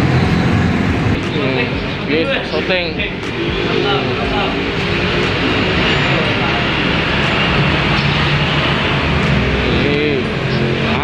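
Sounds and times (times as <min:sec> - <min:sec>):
busy eatery background din: 0:00.0 - 0:11.0
people talking indistinctly: 0:01.1 - 0:11.0.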